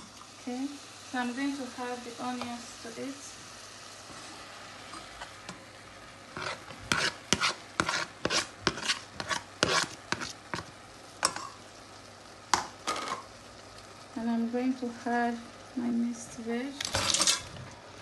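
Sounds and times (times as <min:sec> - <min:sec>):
meat sizzling: 0:00.0 - 0:18.0
metal spoon scraping a pot: 0:06.4 - 0:10.4, 0:16.9 - 0:17.5.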